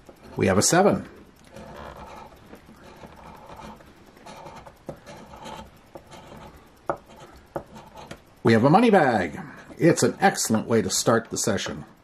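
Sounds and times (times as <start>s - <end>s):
coin scraping scratch-off ticket: 1.5s - 8.2s.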